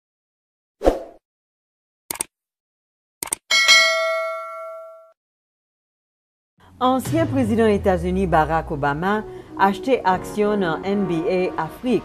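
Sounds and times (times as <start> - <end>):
short clicks: 2.1 - 2.3, 3.2 - 3.4
bell-like ding: 3.5 - 5.2.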